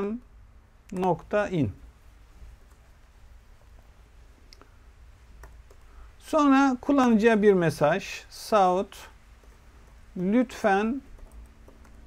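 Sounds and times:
faint keyboard keystrokes: 11.1 - 12.0.

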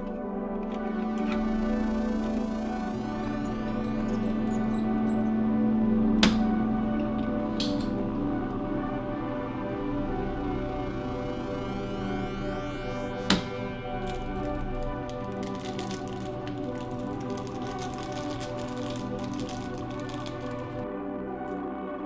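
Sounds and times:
background music: 0.0 - 22.0
desoldering pump snap: 6.2 - 6.6.

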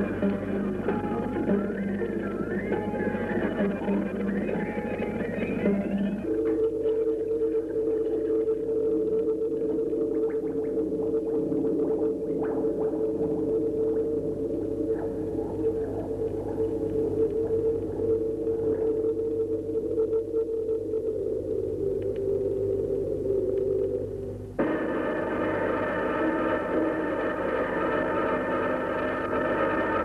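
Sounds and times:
low electronic drone: 0.0 - 30.0
faint scattered clicks: 21.8 - 22.6.

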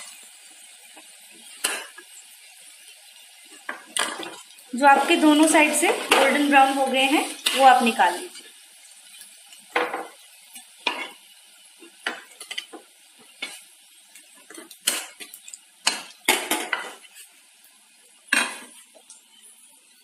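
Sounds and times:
oil sizzling: 0.0 - 20.0
metal spatula scraping pan: 3.6 - 8.5.

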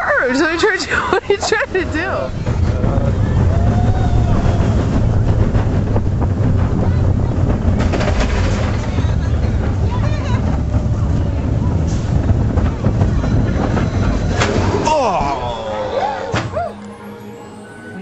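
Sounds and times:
wind buffeting microphone: 0.0 - 15.5
roller coaster train rumbling: 0.0 - 18.0.

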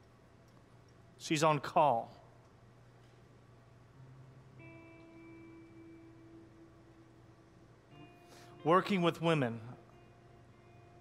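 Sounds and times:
soft keyboard chord: 4.0 - 11.0.

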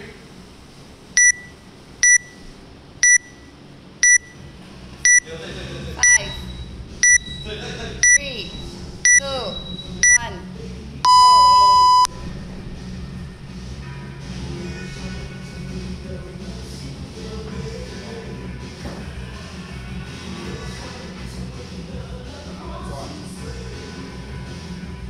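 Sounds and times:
long low beep: 1.2 - 2.4, 3.0 - 4.4, 5.1 - 5.3, 6.0 - 7.4, 8.0 - 8.2, 9.0 - 10.2, 11.0 - 12.2
short high beeps: 1.2 - 2.4, 3.0 - 4.4, 5.1 - 5.3, 6.0 - 7.3, 8.0 - 8.2, 11.1 - 12.2.

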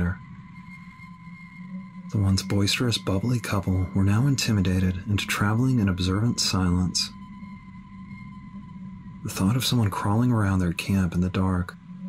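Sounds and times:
low steady drone: 0.0 - 12.0
thin high held tone: 0.0 - 12.0.

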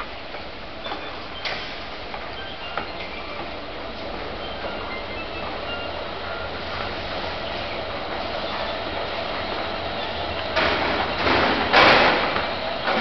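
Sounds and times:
escalator mechanical rumble: 0.0 - 13.0
loud bursts of noise: 6.5 - 13.0.

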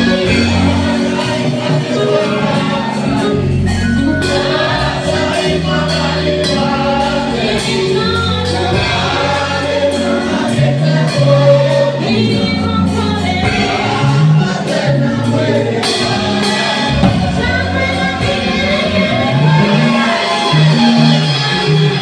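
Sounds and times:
choir singing: 0.0 - 22.0
electric bass guitar: 0.0 - 22.0.

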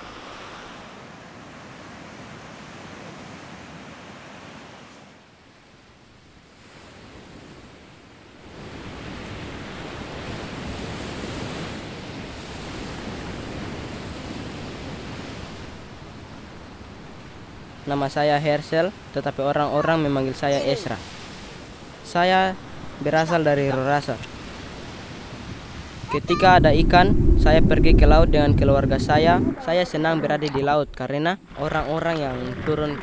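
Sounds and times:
ocean waves washing onto beach: 0.0 - 33.0.

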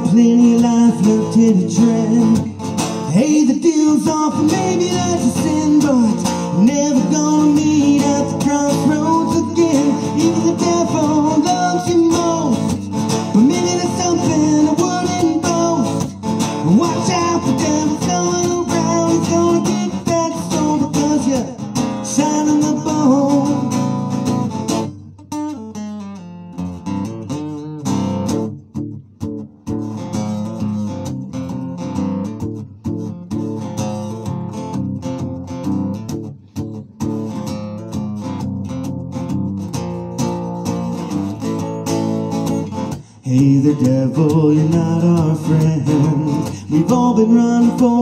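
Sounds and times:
acoustic guitar playing: 0.0 - 48.0.

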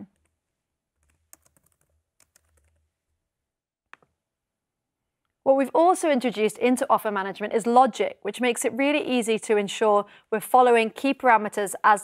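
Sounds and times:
typing on laptop keyboard: 1.0 - 2.9.

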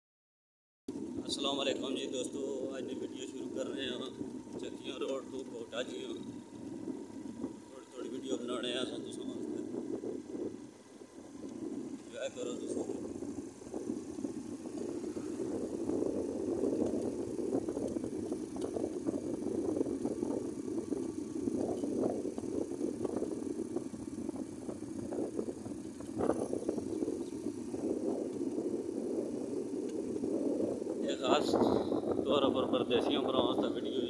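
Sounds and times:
motorcycle engine and wind rush: 0.9 - 34.0.

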